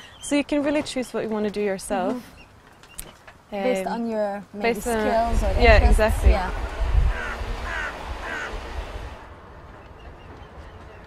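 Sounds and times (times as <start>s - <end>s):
bird calling: 7.1s - 9.1s.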